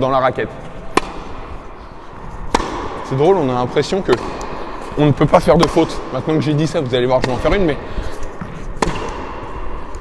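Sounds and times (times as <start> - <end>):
tennis ball impact with echo: 0.6 - 10.0.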